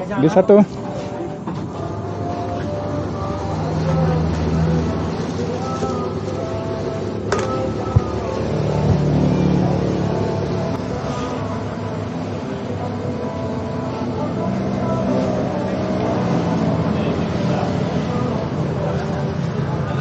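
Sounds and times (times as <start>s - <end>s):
murmur of people talking: 0.0s - 20.0s
vehicle engine hum: 0.7s - 20.0s.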